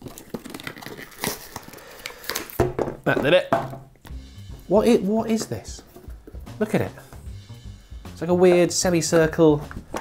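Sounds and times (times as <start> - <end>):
cardboard tearing and crinkling: 0.0 - 2.6.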